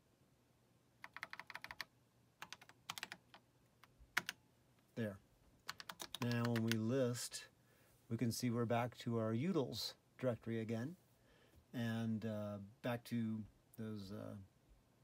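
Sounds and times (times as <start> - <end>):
keyboard keys clicking: 1.0 - 4.4, 5.7 - 6.8
man speaking: 4.9 - 5.2, 6.2 - 7.5, 11.7 - 14.5.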